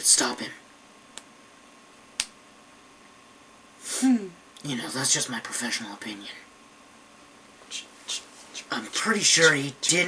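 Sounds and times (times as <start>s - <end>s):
person speaking: 7.6s - 10.0s.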